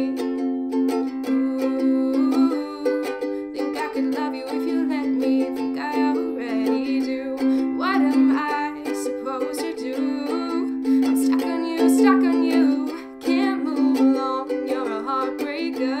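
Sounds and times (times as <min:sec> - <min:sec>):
ukulele strumming chords: 0:00.0 - 0:16.0.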